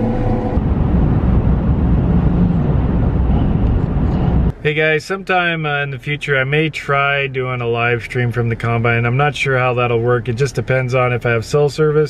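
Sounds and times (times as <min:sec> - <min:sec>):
vehicle engine and tyre noise: 0:00.0 - 0:12.0.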